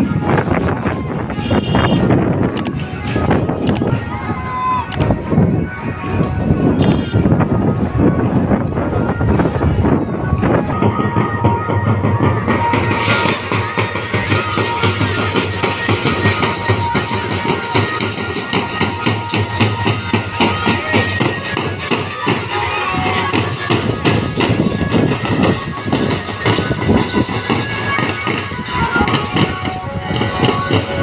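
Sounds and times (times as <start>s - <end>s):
music with dense drumbeat: 0.0s - 31.0s.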